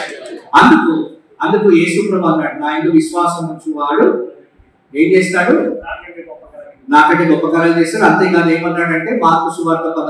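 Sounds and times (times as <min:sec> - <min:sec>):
man speaking into a microphone: 0:00.0 - 0:10.0.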